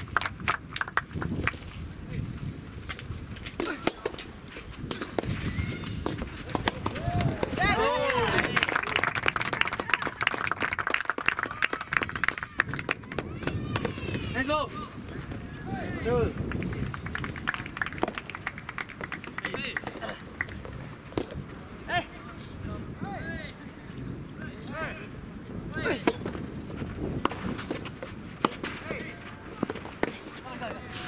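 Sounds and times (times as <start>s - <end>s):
tennis ball struck and bouncing: 3.6s - 7.6s, 27.2s - 30.4s
people shouting: 5.4s - 8.6s, 12.4s - 16.1s
players calling out: 5.4s - 9.1s.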